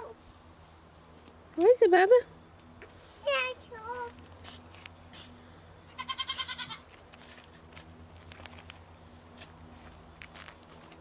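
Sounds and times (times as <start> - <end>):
goat bleating: 5.9 - 6.8.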